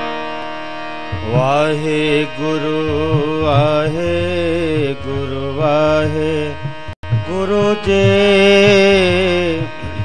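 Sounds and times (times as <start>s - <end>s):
instrumental accompaniment: 0.0s - 10.0s
man singing devotional song: 0.2s - 10.0s.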